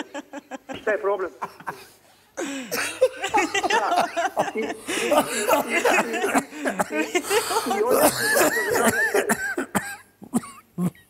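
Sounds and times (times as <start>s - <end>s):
person coughing: 2.4s - 3.1s, 4.4s - 11.0s
person clearing throat: 7.6s - 11.0s.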